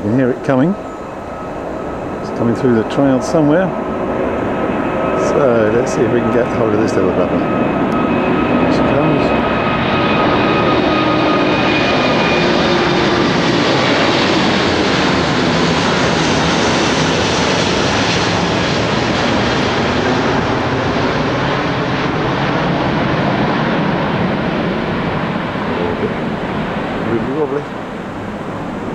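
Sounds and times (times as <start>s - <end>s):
faint engine whine: 0.0s - 28.9s
jet engines rushing overhead: 0.0s - 28.9s.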